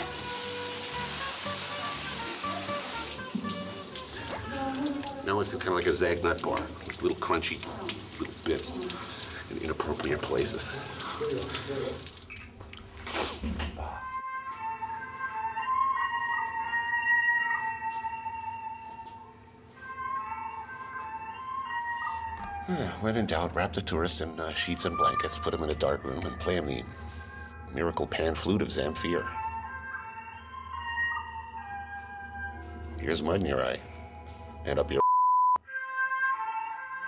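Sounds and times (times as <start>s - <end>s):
slow pan flute music: 0.0s - 7.0s, 13.9s - 23.2s, 24.6s - 34.7s, 35.6s - 37.0s
shower water splashing: 0.0s - 12.6s.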